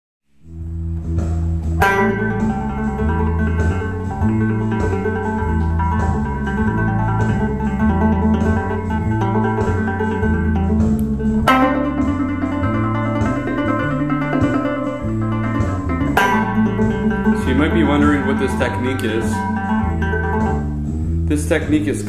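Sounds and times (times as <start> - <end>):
backing track with bass line: 0.3 - 22.0
electric guitar blues lead: 0.8 - 21.3.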